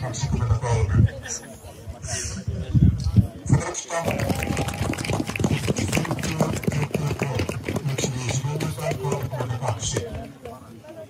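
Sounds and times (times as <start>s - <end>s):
crowd clapping: 4.0s - 10.1s.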